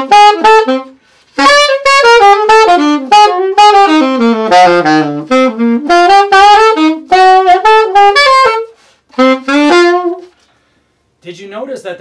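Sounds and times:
saxophone playing jazz phrases: 0:00.0 - 0:10.5
man talking: 0:11.2 - 0:12.0.

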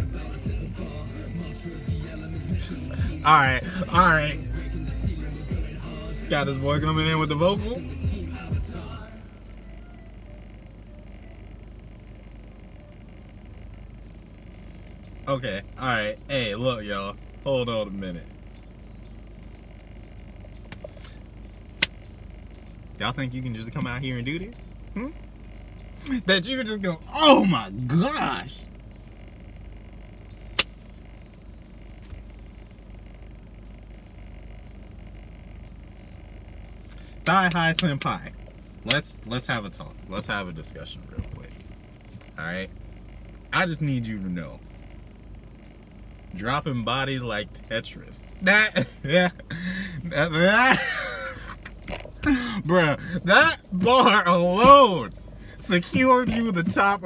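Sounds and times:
car cabin low rumble: 0:00.0 - 0:57.0.

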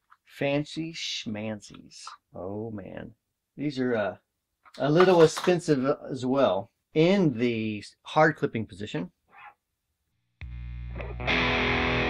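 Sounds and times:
distorted guitar amp buzz: 0:10.4 - 0:12.0.

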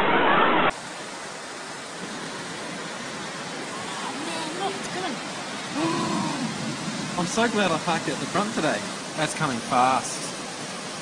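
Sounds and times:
rain: 0:00.0 - 0:11.0
floodwater rushing: 0:00.7 - 0:11.0
person exclaiming: 0:05.7 - 0:06.6.

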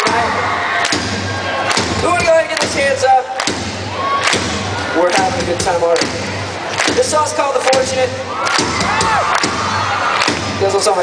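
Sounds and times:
drum hits: 0:00.0 - 0:11.0.

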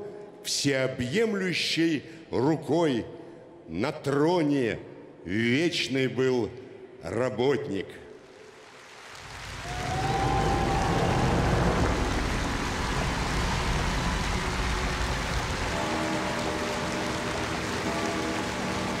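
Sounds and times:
crowd applauding and cheering: 0:08.5 - 0:19.0
steady sustained music: 0:09.9 - 0:19.0.

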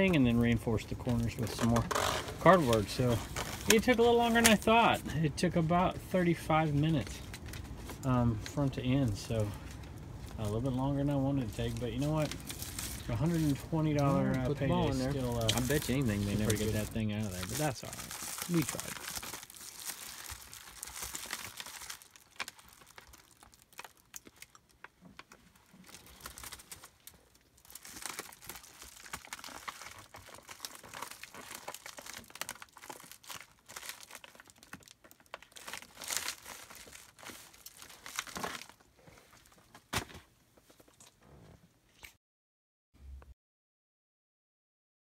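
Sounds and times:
plastic wrap crinkling: 0:00.4 - 0:05.1, 0:06.8 - 0:39.7.

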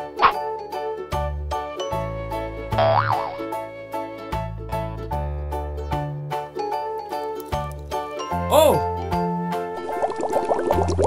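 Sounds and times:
cheerful background music: 0:00.0 - 0:11.0
cartoon boing: 0:02.8 - 0:03.4.

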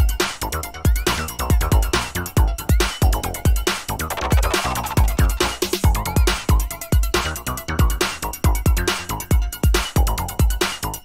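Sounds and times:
electronic dance music beat: 0:04.0 - 0:07.1.

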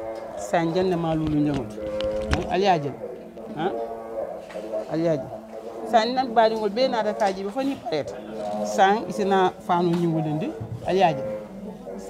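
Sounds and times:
person speaking drawn-out syllables: 0:00.3 - 0:11.4.

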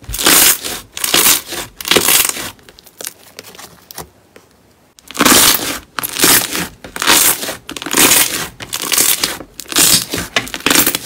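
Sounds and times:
slime crackling and squishing: 0:00.0 - 0:04.0, 0:05.0 - 0:11.0.

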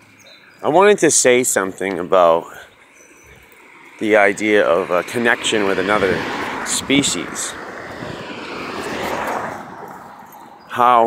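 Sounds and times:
vehicle passing by: 0:00.6 - 0:11.0.

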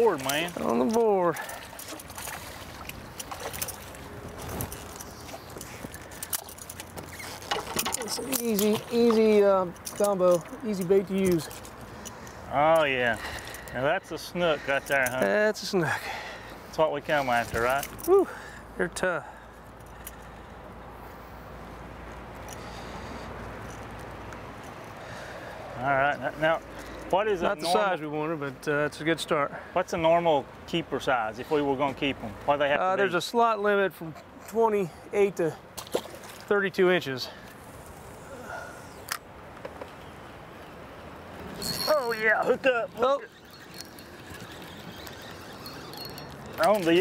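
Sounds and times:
water around a boat: 0:00.0 - 0:47.0
wind: 0:00.0 - 0:47.0.

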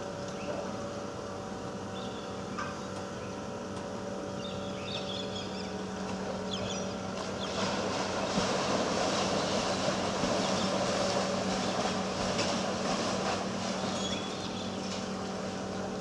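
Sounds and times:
machinery humming: 0:00.0 - 0:16.0
paddle wheels churning water: 0:07.1 - 0:16.0.

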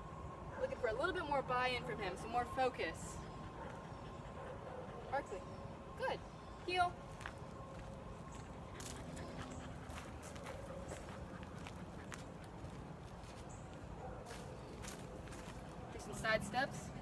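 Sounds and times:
outdoor background hiss: 0:00.0 - 0:17.0
quiet footsteps on asphalt: 0:03.4 - 0:04.8, 0:06.5 - 0:16.3.

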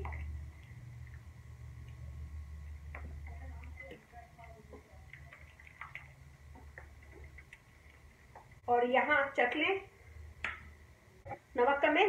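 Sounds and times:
wooden spoon stirring soup in pot: 0:00.0 - 0:08.6
low hum: 0:00.0 - 0:08.9.

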